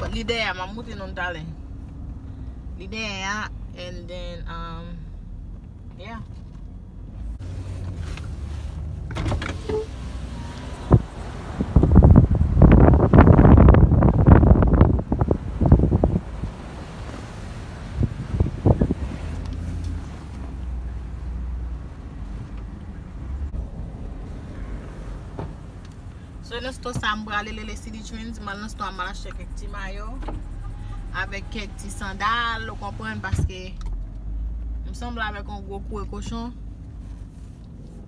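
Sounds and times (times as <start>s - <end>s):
vehicle cabin rumble: 0.0s - 38.0s.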